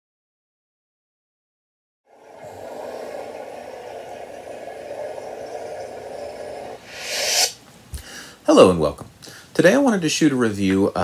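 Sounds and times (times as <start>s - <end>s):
lightsaber idle hum: 2.1s - 7.4s.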